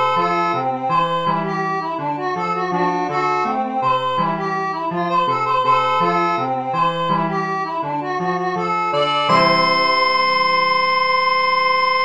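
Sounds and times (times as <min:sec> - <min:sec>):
sustained synth chord: 0:09.3 - 0:12.0.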